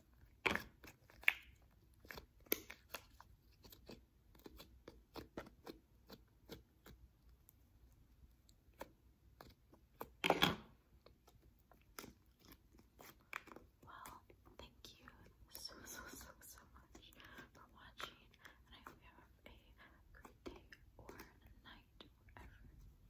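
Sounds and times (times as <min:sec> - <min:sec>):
quiet whispering: 0:13.8 - 0:23.0.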